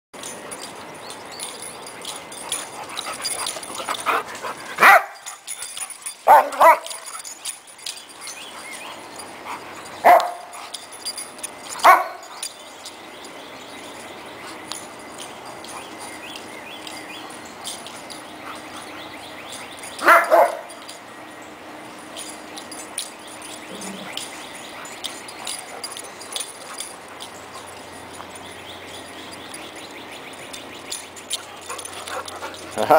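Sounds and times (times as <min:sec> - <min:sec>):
dogs barking while playing: 0:01.8 - 0:12.6, 0:13.9 - 0:21.1, 0:22.1 - 0:32.9.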